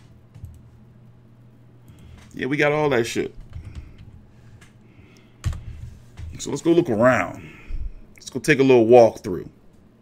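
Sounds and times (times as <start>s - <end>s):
computer keyboard typing: 0.3s - 0.7s, 3.4s - 4.2s, 5.4s - 6.4s.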